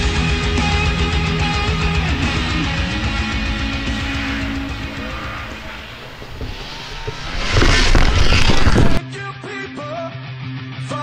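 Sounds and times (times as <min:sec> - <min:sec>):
background rock music: 0:00.0 - 0:11.0
snowmobile engine revving: 0:00.8 - 0:09.0.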